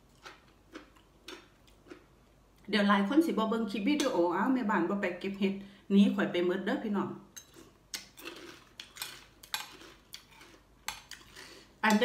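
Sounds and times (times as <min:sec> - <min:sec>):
faint crunching chewing: 0:00.0 - 0:02.7, 0:07.4 - 0:11.8.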